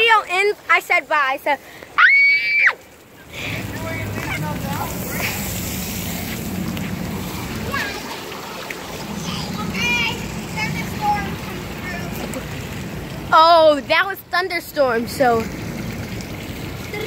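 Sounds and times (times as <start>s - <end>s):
water spraying from sprinkler: 0.0s - 17.0s.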